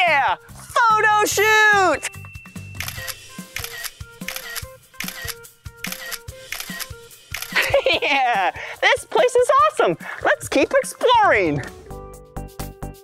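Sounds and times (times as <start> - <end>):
background music: 0.0 - 13.0
camera shutter clicks: 2.8 - 7.7.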